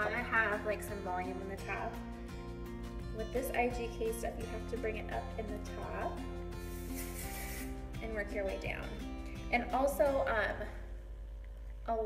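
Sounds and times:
background music: 0.0s - 11.0s
aerosol hair spray hissing: 6.6s - 7.9s.

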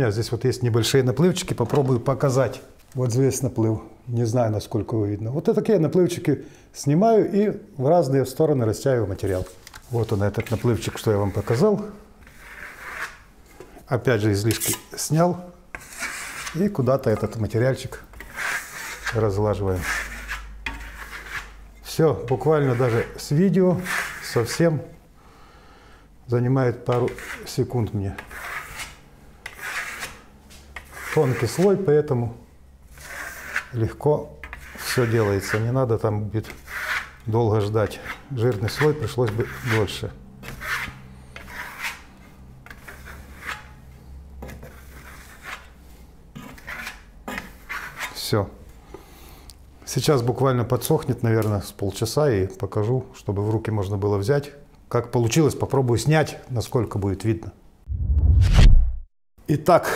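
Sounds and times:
trowel scraping paint: 9.3s - 13.6s, 14.5s - 15.0s, 15.7s - 17.4s, 18.1s - 24.6s, 26.8s - 30.2s, 30.8s - 31.9s, 32.9s - 35.8s, 36.4s - 43.8s, 44.4s - 45.8s, 46.4s - 48.2s.

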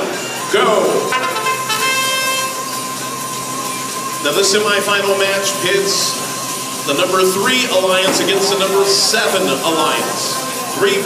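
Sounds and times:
hall background noise: 0.0s - 11.0s
electronic horn tone: 1.0s - 5.2s.

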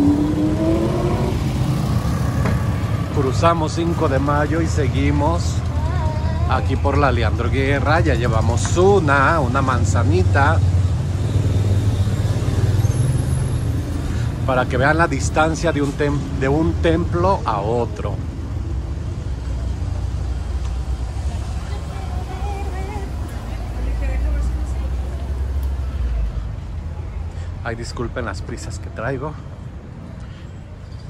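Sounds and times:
vehicle engine accelerating past: 0.0s - 4.0s
low rumble of traffic: 0.0s - 31.0s.

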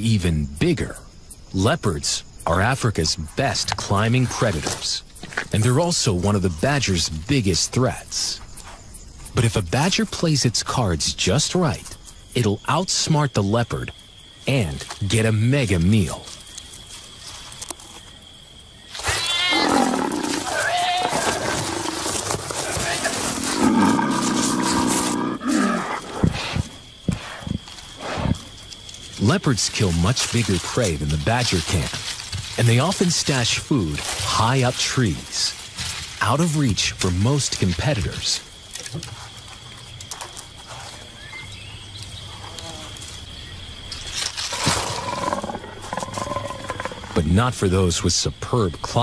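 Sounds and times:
leopard growling: 19.0s - 28.6s, 44.4s - 47.3s.

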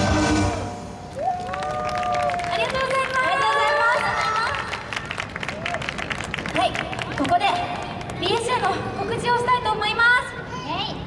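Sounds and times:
people clapping: 1.1s - 8.8s.

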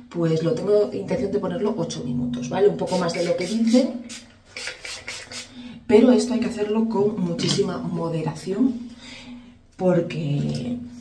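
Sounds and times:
soft spray on hair: 2.8s - 5.5s.

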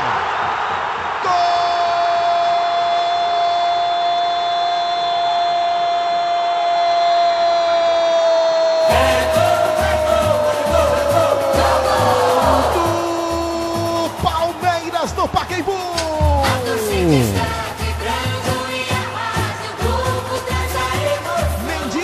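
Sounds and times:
commentator's long held shout: 1.2s - 17.7s
radio jingle with drum beat: 13.8s - 17.9s.

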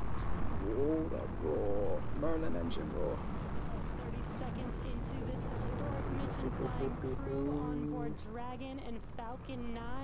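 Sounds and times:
rocket engines roaring: 0.2s - 8.8s.

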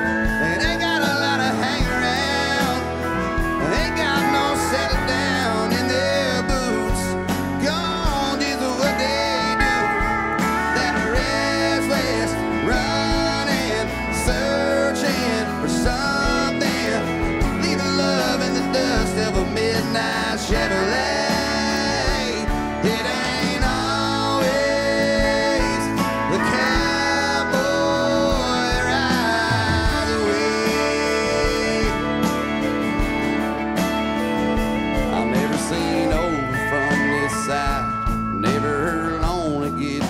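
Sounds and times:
country song with guitar and drums: 0.0s - 40.0s.

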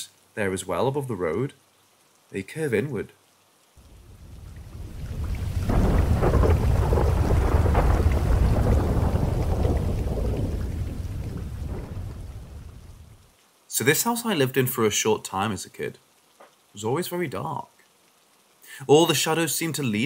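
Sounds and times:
rain: 0.0s - 20.0s
thunder rolling: 3.8s - 13.2s.

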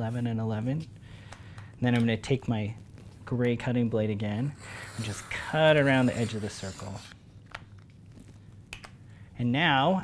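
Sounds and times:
blade scraping through board: 4.4s - 7.2s.

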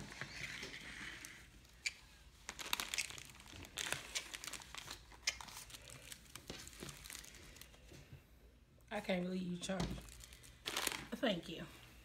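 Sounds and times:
plastic wrapper crinkling: 0.3s - 7.9s, 9.8s - 11.5s.

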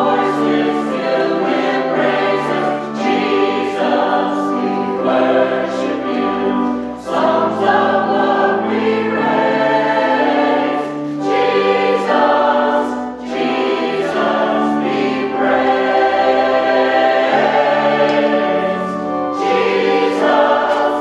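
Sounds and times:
church choir singing held chords: 0.0s - 21.0s.

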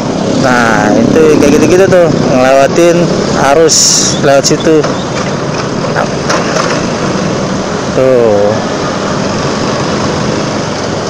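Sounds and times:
motorcycle engine and road noise: 0.0s - 11.0s.

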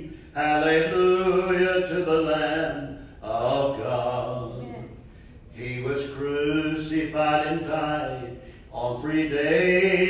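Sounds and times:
man singing a hymn: 0.0s - 4.9s, 5.5s - 10.0s.

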